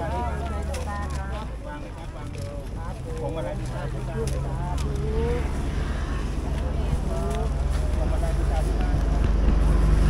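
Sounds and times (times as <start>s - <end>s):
low rumble with faint pulsing: 0.0s - 10.0s.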